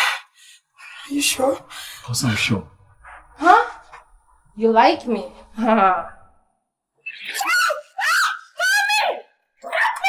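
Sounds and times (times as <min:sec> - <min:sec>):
high-pitched wordless cries: 0:07.0 - 0:10.0.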